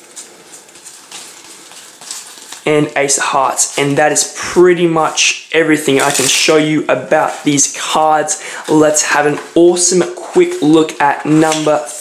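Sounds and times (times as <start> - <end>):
playing cards sliding and rustling: 0.0 - 2.7, 6.0 - 6.5.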